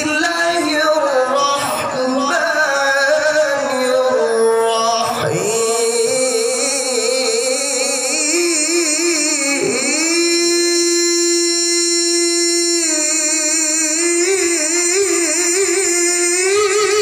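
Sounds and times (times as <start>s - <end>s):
man reciting melodically: 0.0s - 17.0s.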